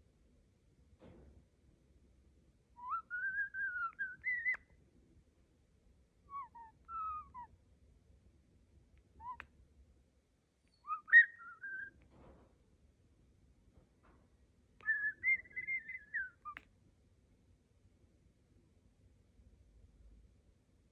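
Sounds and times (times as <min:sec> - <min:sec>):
starling whistling: 0:02.8 - 0:04.6, 0:06.3 - 0:07.5, 0:09.2 - 0:09.4, 0:10.7 - 0:12.0, 0:14.8 - 0:16.6.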